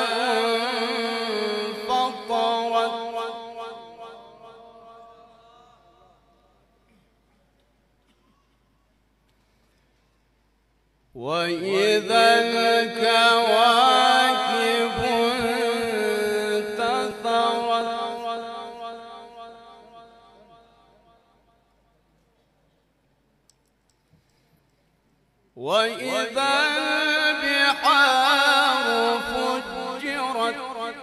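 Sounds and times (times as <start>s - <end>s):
man reciting melodically: 0.0s - 6.6s, 11.1s - 21.4s, 25.5s - 31.0s
faint sharp clicks: 23.4s - 25.2s.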